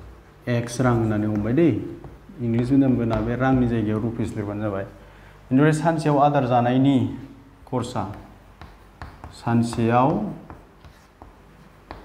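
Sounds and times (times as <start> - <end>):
chalk tapping and scraping on blackboard: 0.6 - 4.1, 7.6 - 12.0.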